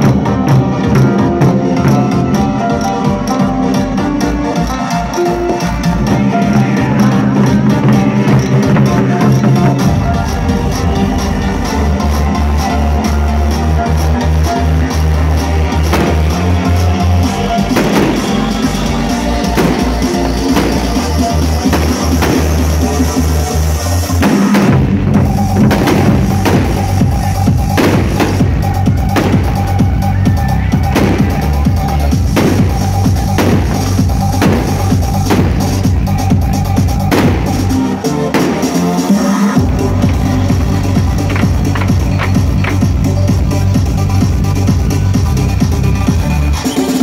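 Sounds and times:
electronic music with heavy bass: 0.0 - 47.0
barrel drums struck hard: 15.9 - 16.4, 17.7 - 18.4, 19.6 - 22.9, 24.2 - 29.9, 30.9 - 31.7, 32.3 - 36.4, 37.1 - 37.8.

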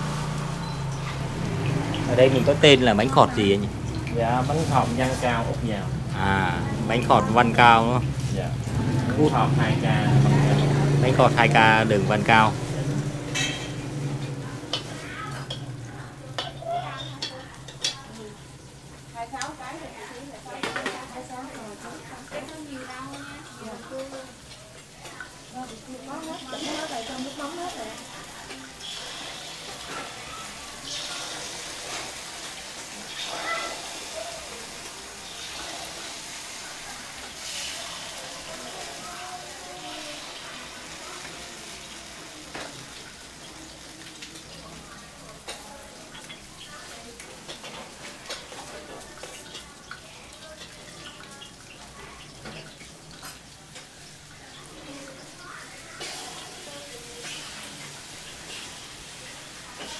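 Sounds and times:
batter sizzling in pans: 0.0 - 59.9
faint voices: 21.6 - 59.9.

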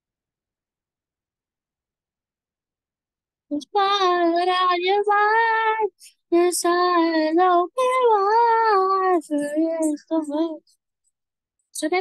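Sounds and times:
young voice singing: 3.5 - 10.6, 11.8 - 12.0.

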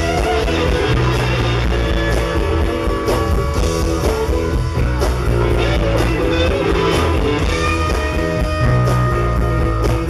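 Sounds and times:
bass guitar: 0.0 - 10.0
drums: 0.0 - 10.0
electric guitar lead: 0.0 - 10.0.

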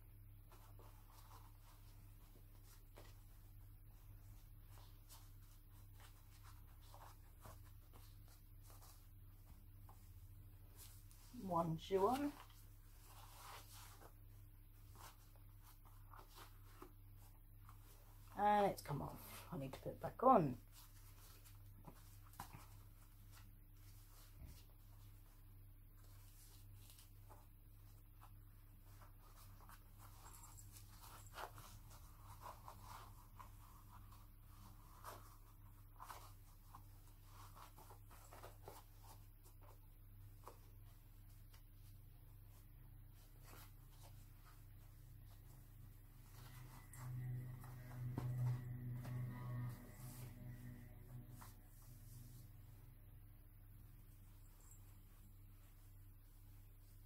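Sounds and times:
fabric rustling: 0.0 - 57.0
low steady hum: 0.0 - 57.0.

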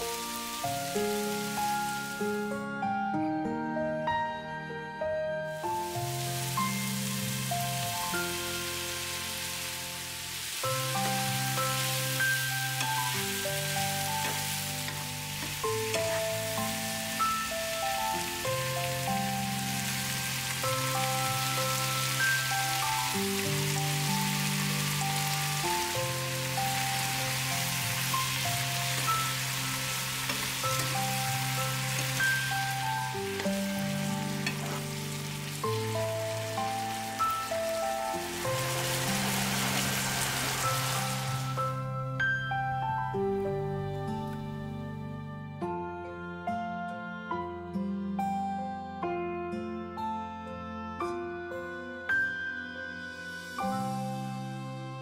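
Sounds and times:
apples sizzling in a frying pan: 0.0 - 2.7, 5.5 - 42.1, 53.4 - 54.4
slow background music: 0.0 - 55.0.

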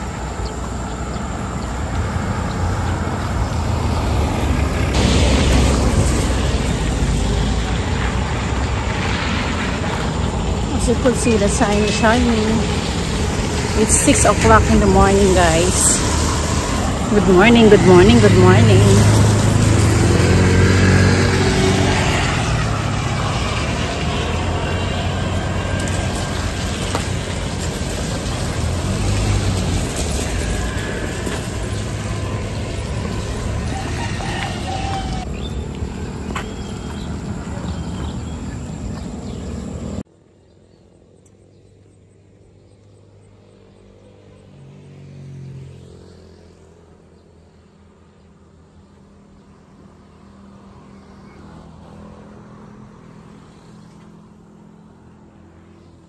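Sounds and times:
vehicle passing: 0.0 - 40.0, 42.3 - 56.0
highway traffic noise: 0.0 - 56.0.

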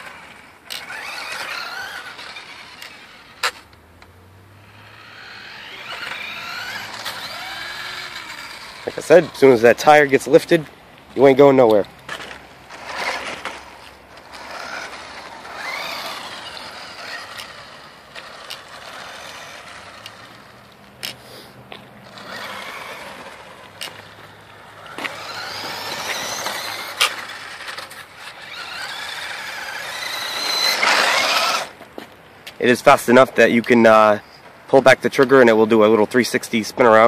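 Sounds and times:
small electric motor whining: 0.0 - 9.9, 12.1 - 31.8
tyre noise on pavement: 0.0 - 37.0.

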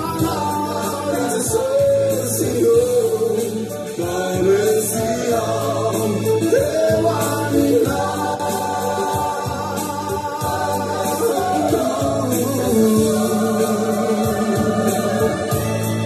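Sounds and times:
band with steady beat: 0.0 - 16.0
choir singing gospel song: 0.0 - 16.0.

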